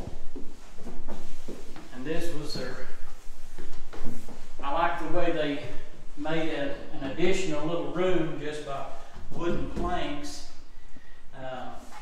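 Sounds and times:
footsteps on wooden stairs: 0.0s - 2.0s.

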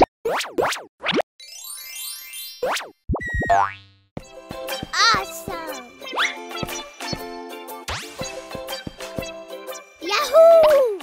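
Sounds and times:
cartoon springy boings and pops: 2.3s - 4.1s.

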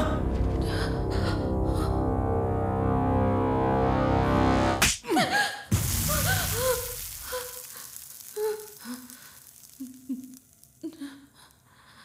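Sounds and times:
hiss: 5.8s - 10.4s.

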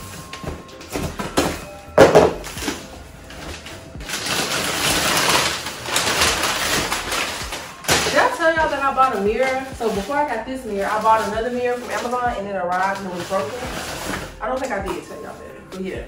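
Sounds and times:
packing paper crinkling: 0.0s - 15.2s.

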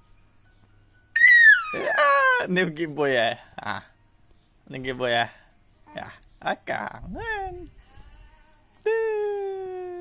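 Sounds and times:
toddler squealing: 1.2s - 2.4s.

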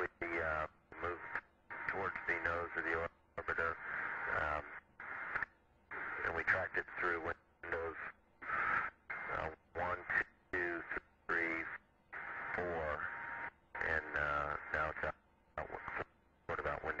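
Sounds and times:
voice over radio: 0.0s - 4.8s, 6.0s - 11.8s, 12.5s - 13.2s, 13.8s - 17.0s.

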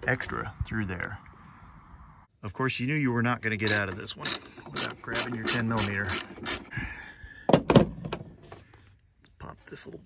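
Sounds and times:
socket ratchet clicking: 3.6s - 6.7s
loud thunks: 7.5s - 8.3s.

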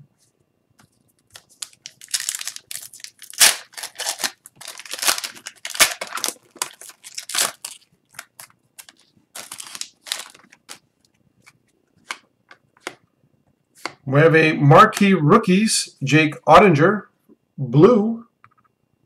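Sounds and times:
wrapper ripping and rustling: 1.2s - 10.9s
sharp loud wrapper crackles: 1.4s - 10.8s.

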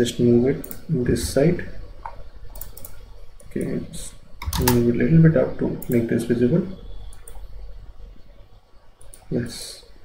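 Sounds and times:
computer mouse clicks: 0.6s - 0.9s, 2.0s - 3.8s, 4.4s - 4.9s, 7.1s - 7.5s, 9.0s - 9.3s.

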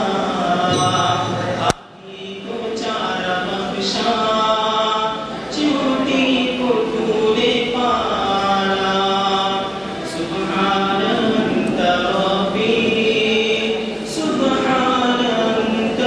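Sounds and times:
man singing unaccompanied: 1.5s - 16.0s.

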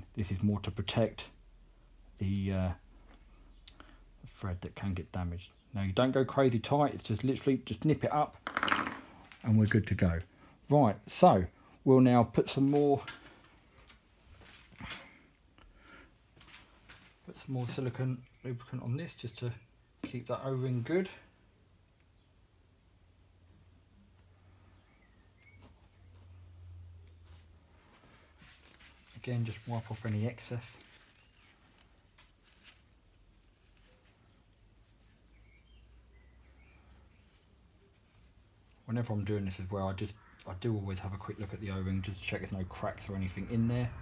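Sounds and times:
metal object handled on foam mat: 8.5s - 9.1s.

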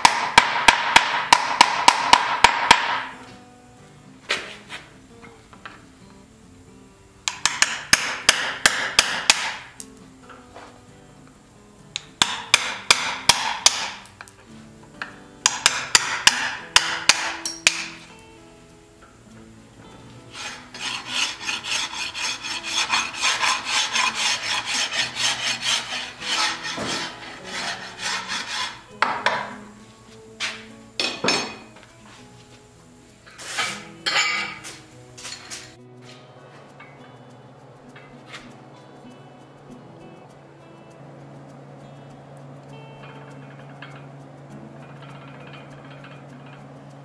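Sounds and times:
file rasping against steel: 15.4s - 18.0s, 20.3s - 29.6s.

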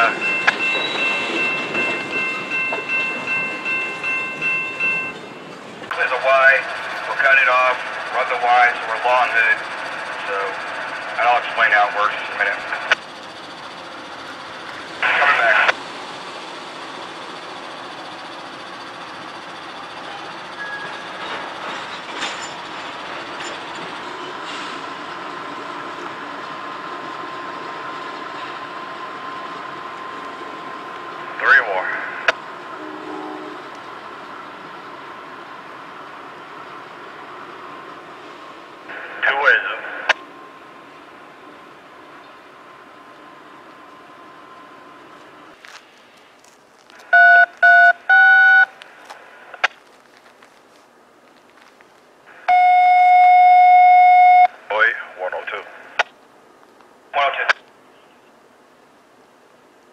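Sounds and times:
radio scanner chatter: 0.0s - 0.6s, 5.9s - 13.8s, 14.6s - 15.8s, 31.4s - 32.4s, 38.9s - 40.2s, 54.3s - 56.1s, 57.1s - 57.6s
diesel locomotive engine: 0.0s - 59.9s.

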